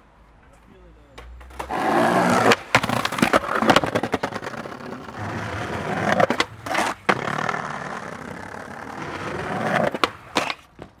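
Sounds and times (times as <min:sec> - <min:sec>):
skateboard wheels rolling on concrete: 0:00.0 - 0:11.0
skateboard clacking on ground: 0:00.4 - 0:11.0.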